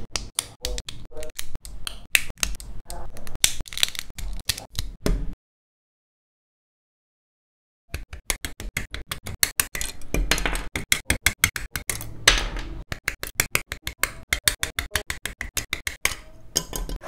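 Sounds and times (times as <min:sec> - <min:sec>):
plastic clicks and rattles: 0:08.0 - 0:12.1.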